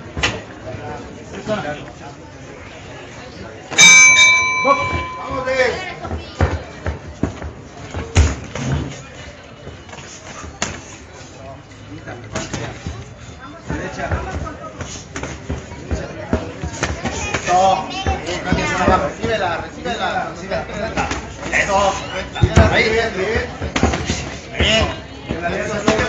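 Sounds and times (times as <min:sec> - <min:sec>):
boxing ring bell: 0:03.8 - 0:05.8.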